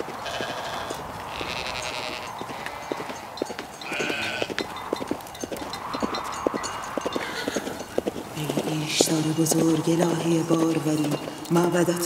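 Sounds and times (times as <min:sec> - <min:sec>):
sheep bleating: 0:00.0 - 0:04.6.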